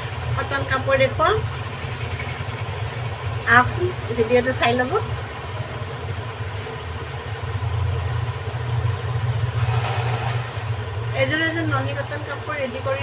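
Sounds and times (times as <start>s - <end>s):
electric fan drone: 0.0s - 13.0s.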